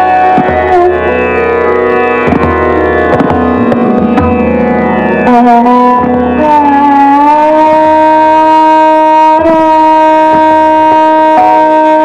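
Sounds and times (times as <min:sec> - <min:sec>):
bowed violin note: 0:00.0 - 0:12.0.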